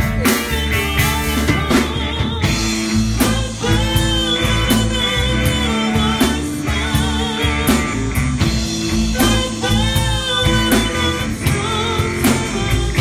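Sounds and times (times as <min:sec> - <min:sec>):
live blues band playing: 0:00.0 - 0:13.0
steady drum beat: 0:00.0 - 0:13.0.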